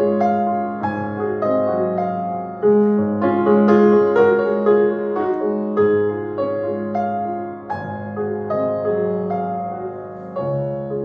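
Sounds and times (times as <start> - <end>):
grand piano solo: 0.0 - 11.0.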